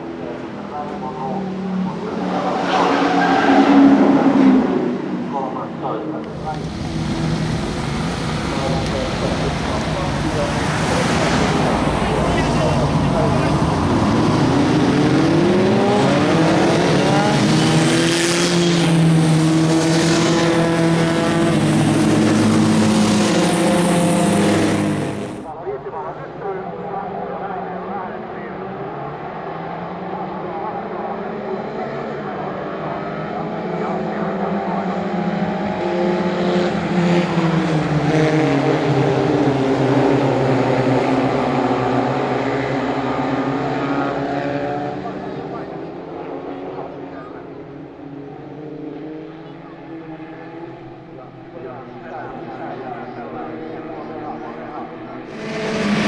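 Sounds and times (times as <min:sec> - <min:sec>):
racing car engines accelerating: 0:00.0 - 0:56.0.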